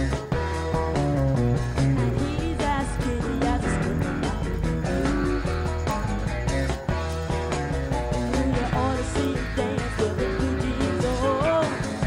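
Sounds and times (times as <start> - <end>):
bass: 0.0 - 12.0
drums: 0.0 - 12.0
lead guitar: 0.0 - 12.0.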